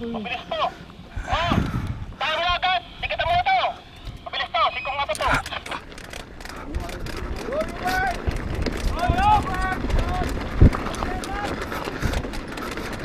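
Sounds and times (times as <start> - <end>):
bike tyres rolling over gravel: 2.1 - 13.0.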